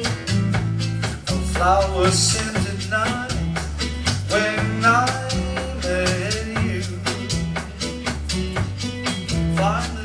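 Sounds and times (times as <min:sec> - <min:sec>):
live band music: 0:00.0 - 0:10.0
person singing: 0:01.1 - 0:07.8, 0:09.5 - 0:10.0.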